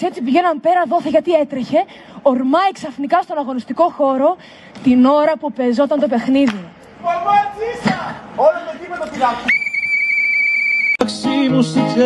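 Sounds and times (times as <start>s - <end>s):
whistle blast: 9.5s - 11.0s.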